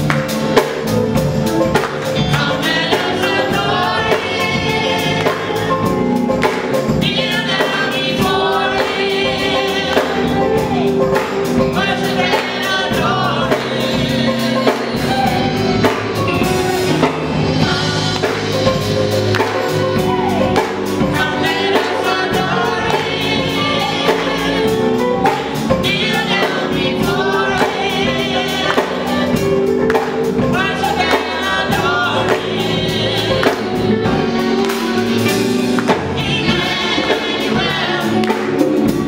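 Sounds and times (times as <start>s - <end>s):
bass guitar: 0.0s - 39.0s
drum kit beat: 0.0s - 39.0s
people singing together: 0.0s - 39.0s.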